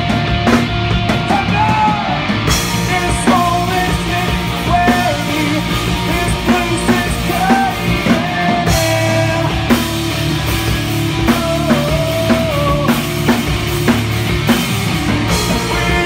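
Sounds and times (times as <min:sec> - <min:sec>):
bass guitar: 0:00.0 - 0:16.0
drum kit: 0:00.0 - 0:16.0
electric guitar: 0:00.0 - 0:16.0.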